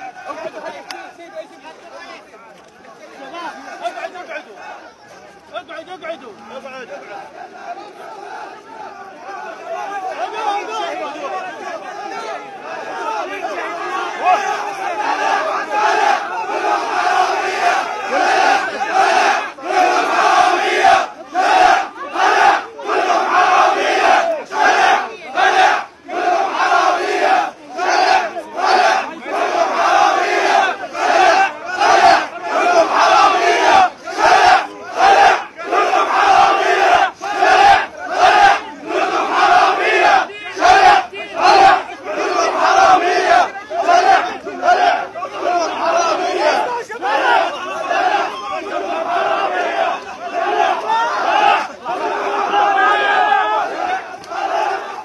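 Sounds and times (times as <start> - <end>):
crowd of men chanting in protest: 0.0 - 55.0.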